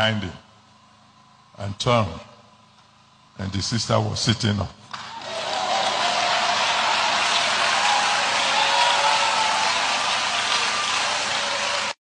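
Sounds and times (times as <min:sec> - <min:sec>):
crowd cheering loudly: 0:05.0 - 0:12.0.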